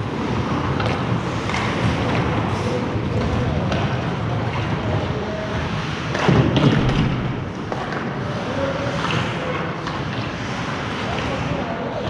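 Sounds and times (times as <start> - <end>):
arena background noise: 0.0 - 12.0
knocks of puck and sticks: 0.4 - 4.8, 5.8 - 12.0
thud in ice rink: 6.0 - 8.1.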